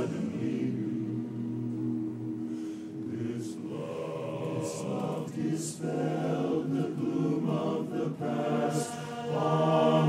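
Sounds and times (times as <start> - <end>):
men's chorus singing a cappella: 0.0 - 2.4, 3.0 - 10.0.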